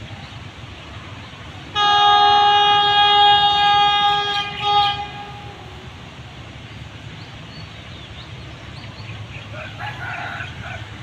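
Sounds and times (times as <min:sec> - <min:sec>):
train horn chord: 0:01.7 - 0:06.2.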